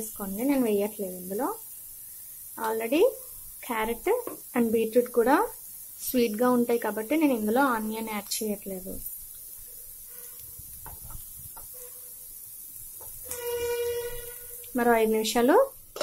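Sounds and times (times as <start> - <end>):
vegetables sizzling in oil: 0.0 - 16.0.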